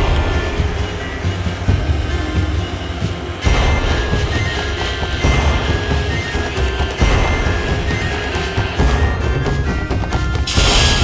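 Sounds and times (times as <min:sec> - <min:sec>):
background music: 0:00.0 - 0:11.0
gas torch flame rushing: 0:10.5 - 0:11.0.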